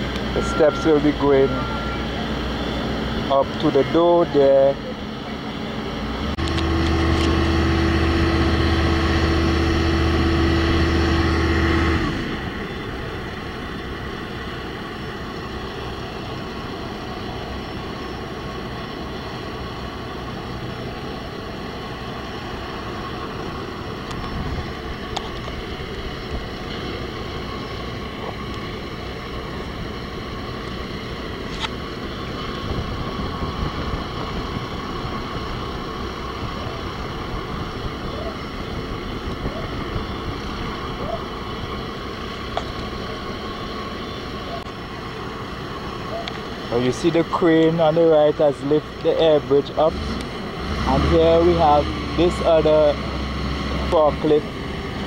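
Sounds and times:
crane and forklift engines rumbling: 0:00.0 - 0:55.0
diesel engine drone: 0:00.0 - 0:55.0
wind on microphone: 0:32.2 - 0:41.8.

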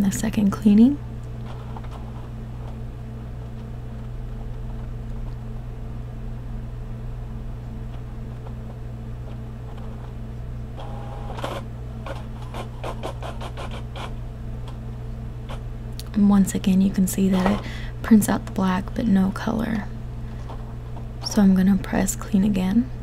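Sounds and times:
printer low hum: 0:00.0 - 0:23.0
printer motor whine: 0:07.8 - 0:14.2.

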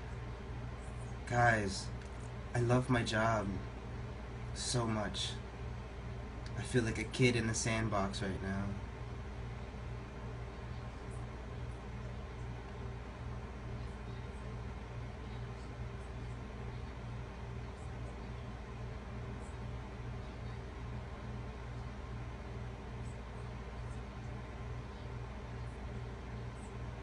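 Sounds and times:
faint regular pulsing: 0:00.0 - 0:27.0
low electrical hum and hiss: 0:00.0 - 0:27.0.

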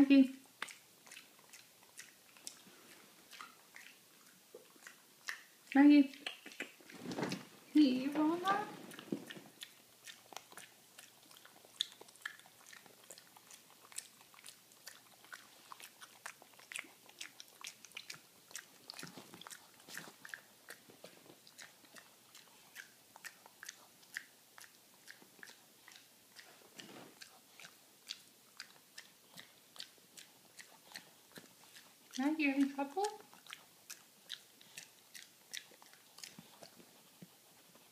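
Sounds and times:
dog chewing a nut: 0:00.4 - 0:07.0, 0:08.8 - 0:37.9
dog smacking lips: 0:00.5 - 0:37.9.

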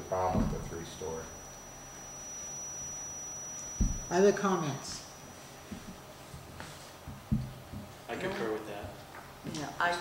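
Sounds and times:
high-pitched electronic whine: 0:00.0 - 0:06.4
low thump: 0:00.3 - 0:00.8, 0:03.8 - 0:04.0.

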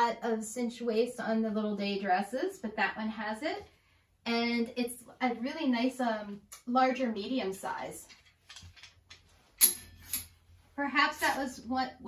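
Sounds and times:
sharp metallic click with ring: 0:09.6 - 0:10.3.

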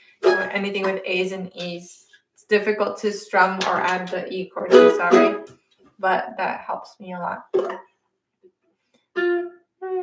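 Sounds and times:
ukulele notes plucked: 0:00.2 - 0:00.7, 0:04.6 - 0:05.5, 0:09.2 - 0:10.0.

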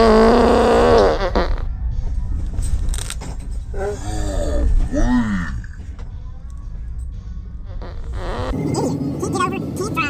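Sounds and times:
car road noise rumble: 0:00.0 - 0:10.0
groaning voice: 0:03.7 - 0:05.9.

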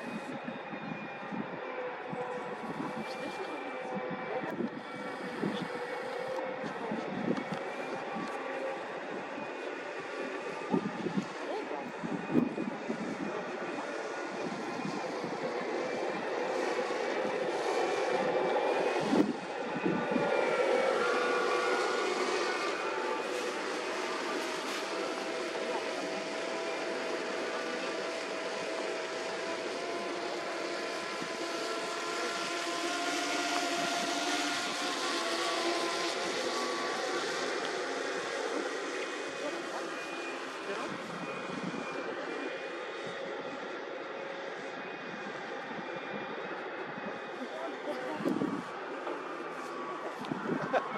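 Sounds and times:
engine drone: 0:00.0 - 0:50.9.

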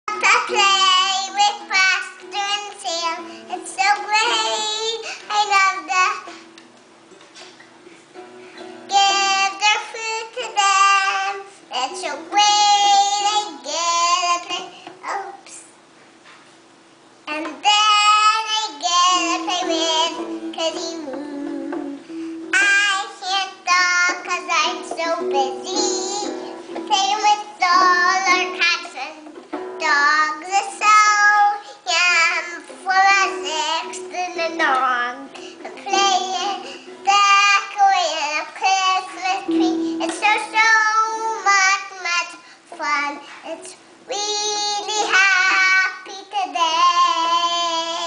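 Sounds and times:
girl singing: 0:00.1 - 0:06.6, 0:08.6 - 0:15.8, 0:17.2 - 0:48.0
toy acoustic guitar strumming: 0:00.1 - 0:15.5, 0:17.2 - 0:48.0.

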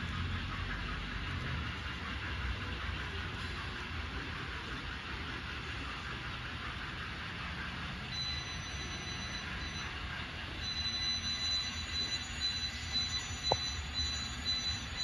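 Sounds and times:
wheels rumbling on rail: 0:00.0 - 0:12.0.

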